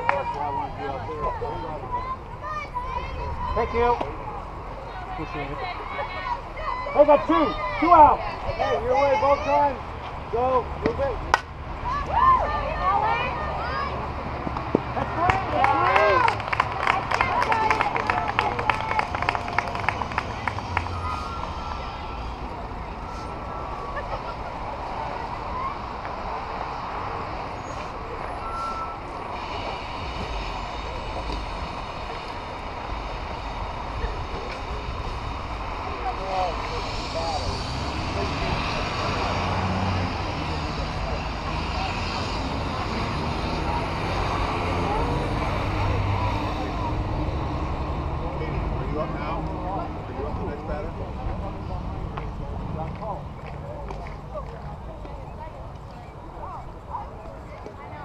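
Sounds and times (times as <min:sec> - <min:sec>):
faint distant voices: 0:00.0 - 0:58.0
rapid hand claps: 0:14.6 - 0:20.9.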